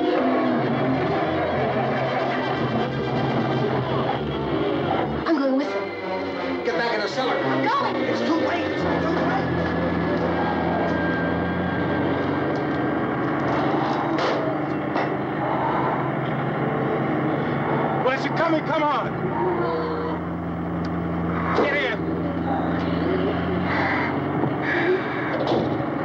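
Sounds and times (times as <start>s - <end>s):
pitched voices: 0.0s - 12.3s, 13.4s - 25.4s
truck engine running: 0.0s - 26.0s.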